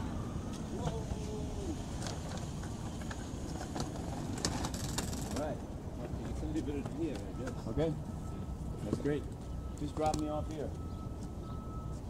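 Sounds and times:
voices: 0.0 - 3.9, 5.0 - 11.9
city street traffic: 0.0 - 12.0
hand truck rattling over pavement: 0.7 - 8.0.

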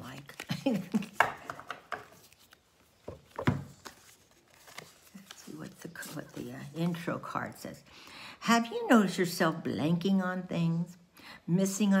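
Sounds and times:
woman laughing: 0.4 - 1.4.

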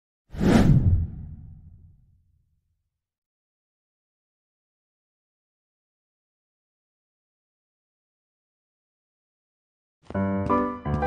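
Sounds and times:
whoosh sound effect: 0.4 - 1.9
deep rumble: 0.4 - 2.1.

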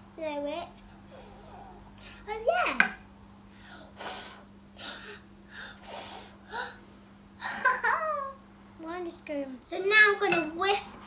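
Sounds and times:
child blowing puffs of breath: 3.5 - 6.8.

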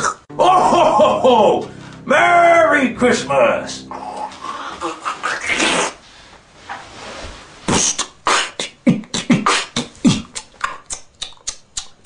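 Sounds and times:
breathy rush of air: 1.6 - 2.0.

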